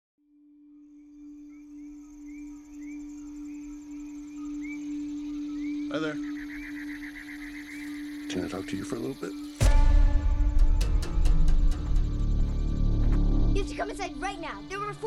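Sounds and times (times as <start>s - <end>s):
steady low tone: 0.8s - 15.0s.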